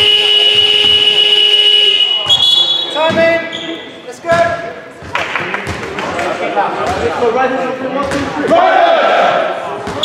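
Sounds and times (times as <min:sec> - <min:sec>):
scoreboard buzzer tone: 0:00.0 - 0:02.3.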